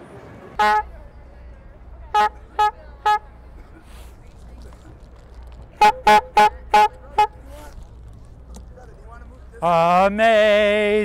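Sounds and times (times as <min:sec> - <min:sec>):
bulb horn tooting: 0:00.6 - 0:01.2, 0:02.1 - 0:03.5, 0:05.7 - 0:07.8.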